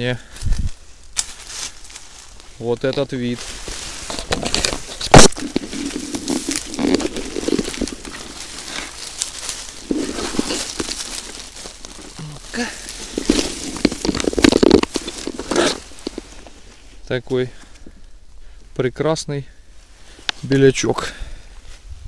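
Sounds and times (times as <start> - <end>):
dry leaves rustling and crackling: 0.6 - 17.0.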